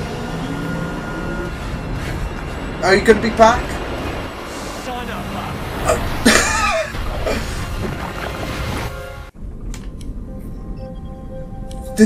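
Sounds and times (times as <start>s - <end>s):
voices speaking: 2.8s - 6.1s.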